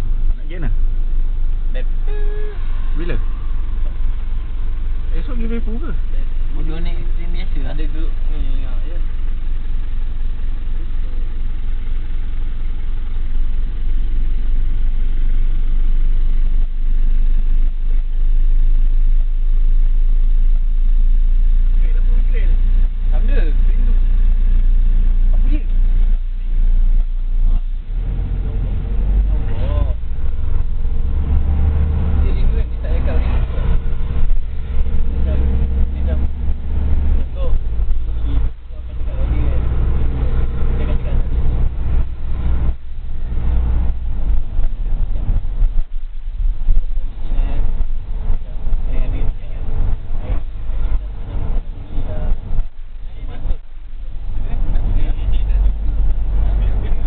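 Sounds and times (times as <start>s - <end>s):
road noise: 0.0s - 57.0s
vehicle engine: 0.0s - 57.0s.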